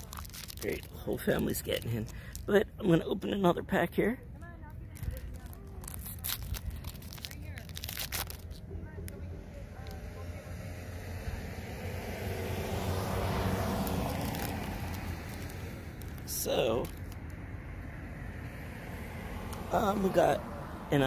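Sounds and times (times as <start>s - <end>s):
foil wrapper crinkling and tearing: 0.0s - 2.6s, 4.8s - 8.7s, 13.3s - 17.3s
car passing: 4.6s - 21.0s
people's voices: 8.4s - 11.5s.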